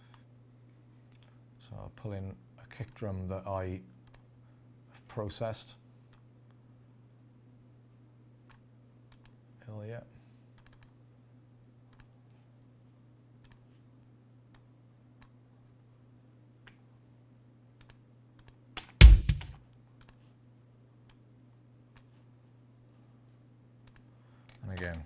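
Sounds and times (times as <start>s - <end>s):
steady low hum: 18.8s - 25.0s
kick drum hit: 18.9s - 19.6s.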